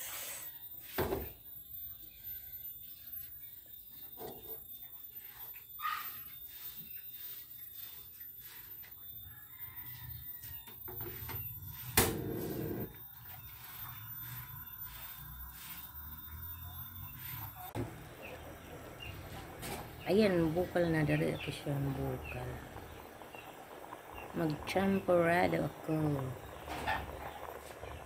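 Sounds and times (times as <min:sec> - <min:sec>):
rooster crowing faintly: 0:09.2 - 0:11.3.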